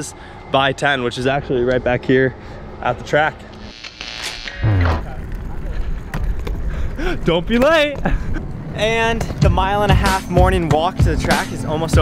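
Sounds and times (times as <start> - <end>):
suitcase wheels rolling on concrete: 5.0 - 12.0.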